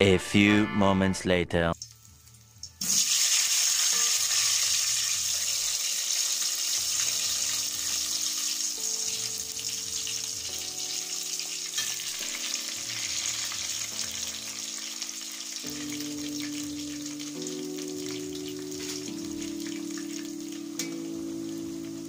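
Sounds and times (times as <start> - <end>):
soft background music: 0.0 - 22.0
potatoes sizzling in hot oil: 1.8 - 22.0.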